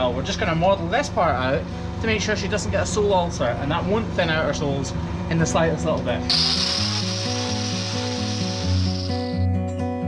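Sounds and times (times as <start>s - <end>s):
angle grinder grinding hoof: 6.3s - 9.3s.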